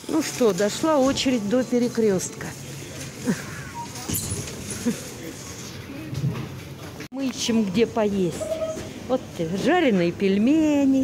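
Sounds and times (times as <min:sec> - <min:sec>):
indistinct voices of shoppers: 0:00.0 - 0:11.0
supermarket background noise: 0:00.0 - 0:11.0.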